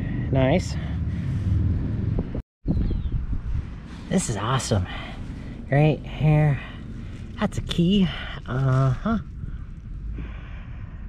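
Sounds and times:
wind buffeting microphone: 1.0s - 11.0s.

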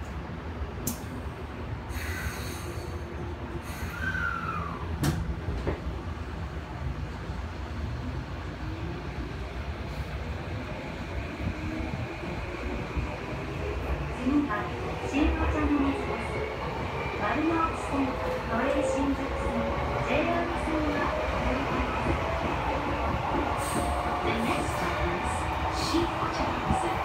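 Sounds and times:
subway train rumble: 0.0s - 27.0s
train whine: 0.1s - 27.0s.

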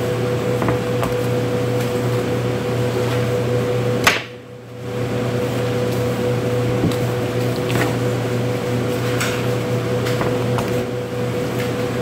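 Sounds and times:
cooling equipment hum: 0.0s - 12.0s.

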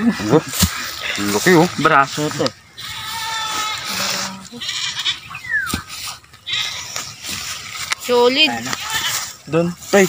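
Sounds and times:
goat bleating: 2.8s - 5.5s, 6.3s - 7.0s, 8.4s - 9.4s.

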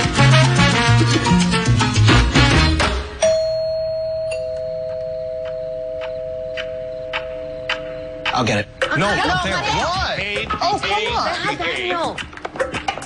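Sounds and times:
salsa music: 0.0s - 3.2s, 5.5s - 13.0s
two-tone doorbell chime: 3.2s - 8.6s.

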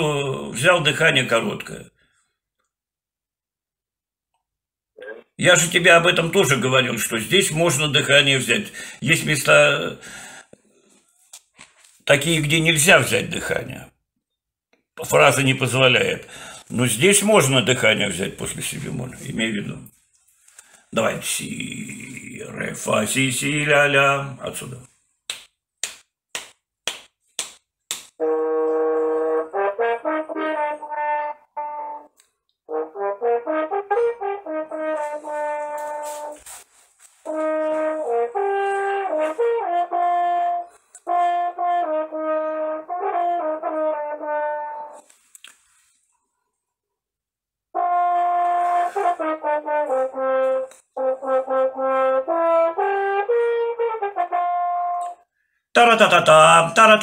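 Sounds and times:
french horn playing: 28.2s - 32.1s, 32.7s - 36.5s, 37.2s - 45.0s, 47.8s - 55.1s.

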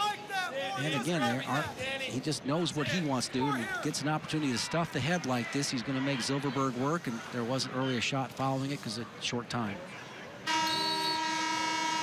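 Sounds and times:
scoreboard horn tone: 10.5s - 12.0s.

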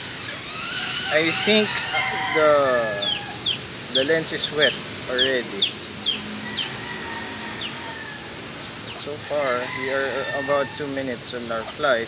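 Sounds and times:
outdoor hiss: 0.0s - 12.0s
bird chirping: 0.5s - 12.0s.

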